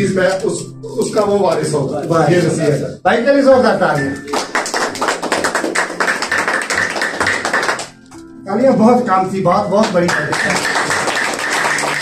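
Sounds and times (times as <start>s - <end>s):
rhythmic hand clapping and tapping: 4.0s - 8.2s, 9.8s - 12.0s.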